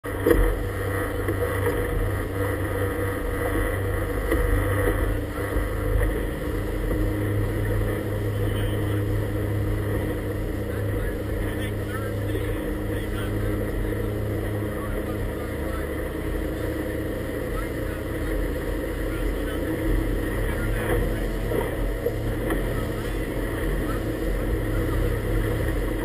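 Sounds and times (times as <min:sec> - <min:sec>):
boat motor humming: 0:00.0 - 0:26.0.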